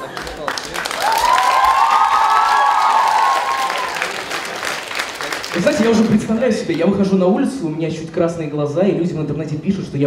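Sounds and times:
audience applauding: 0.0 - 6.8
long drawn-out cheer: 0.8 - 5.6.

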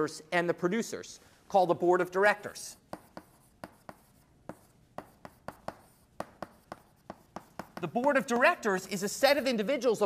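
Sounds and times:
chalk tapping and scratching: 2.7 - 10.0.

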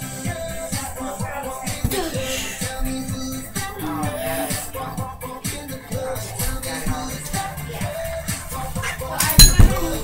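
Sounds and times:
pop music with a beat: 0.0 - 10.0.

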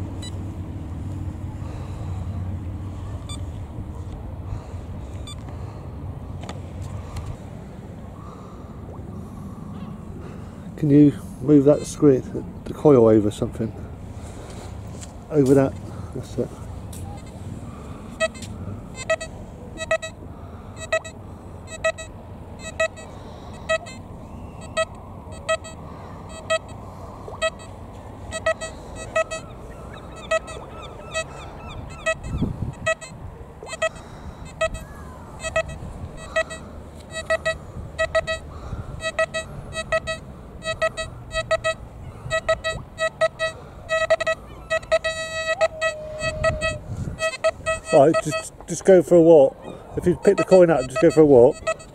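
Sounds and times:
metal detector beeps: 18.2 - 20.2, 20.8 - 24.0, 24.6 - 31.3, 31.9 - 48.9, 50.0 - 51.9.

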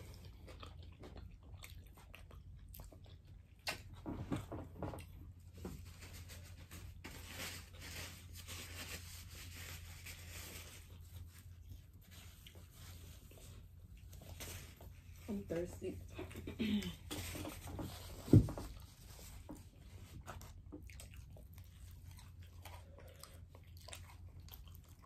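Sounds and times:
chewing and biting: 0.0 - 5.6, 18.7 - 25.0.

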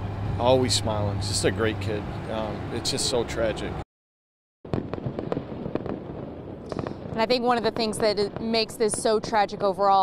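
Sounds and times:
firecrackers popping: 4.7 - 10.0.

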